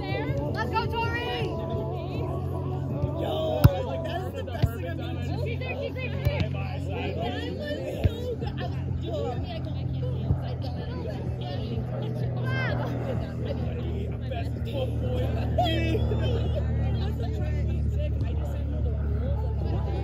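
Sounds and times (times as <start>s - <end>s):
people talking and calling out: 0.0s - 20.0s
steady low hum: 0.0s - 20.0s.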